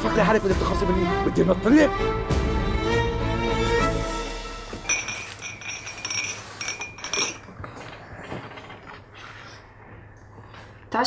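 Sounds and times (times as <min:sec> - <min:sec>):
music: 0:00.0 - 0:06.2
glasses and teapot clinking on tray: 0:04.8 - 0:07.6.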